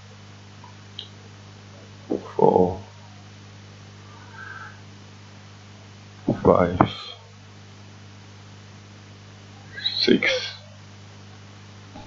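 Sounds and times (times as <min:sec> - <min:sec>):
faint hiss: 0:00.0 - 0:12.0
low electrical hum: 0:00.0 - 0:12.0
man's voice: 0:06.3 - 0:07.2, 0:09.8 - 0:10.6.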